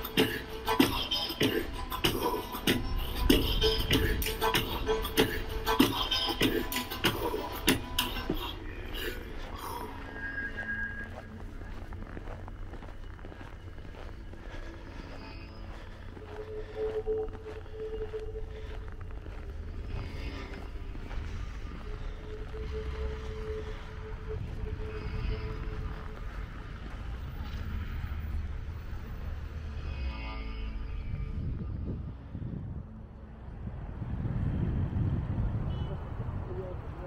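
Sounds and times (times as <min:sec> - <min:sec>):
passers-by voices: 0:00.0 - 0:29.8, 0:31.3 - 0:37.0
road traffic rumble: 0:00.0 - 0:37.0.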